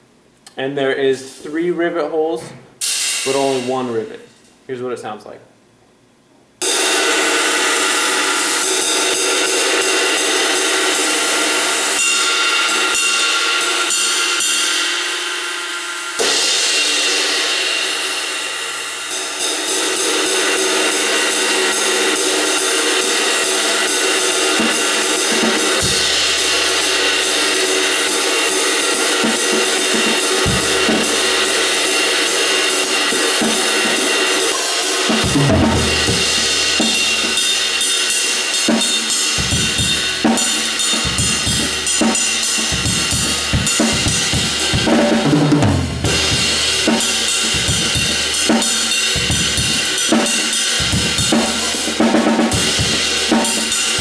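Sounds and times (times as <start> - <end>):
ride cymbal played with drumstick: 6.6 - 54.0.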